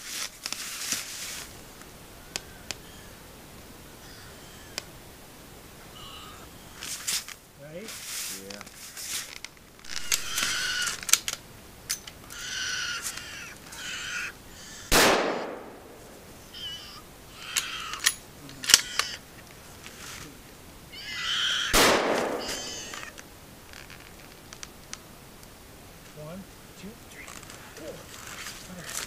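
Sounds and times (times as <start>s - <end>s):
bear cubs shrieking: 2.1s - 5.2s, 5.8s - 7.2s, 9.7s - 24.1s
sharp clicks: 9.8s - 12.4s
loud gunshots: 14.9s - 16.0s, 21.7s - 22.9s.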